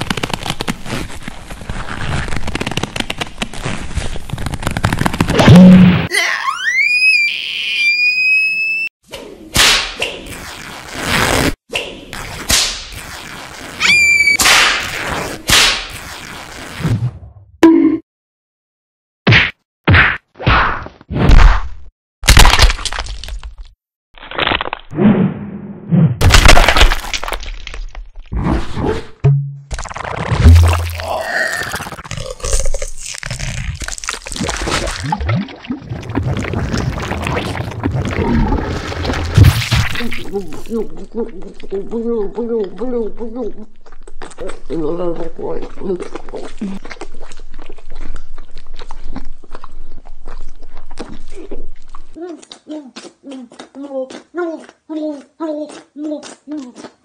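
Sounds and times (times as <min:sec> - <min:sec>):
whistle tone: 0:13.8 - 0:14.4
person's wordless mouth sound: 0:30.4 - 0:33.8, 0:39.8 - 0:47.0, 0:51.2 - 0:57.0.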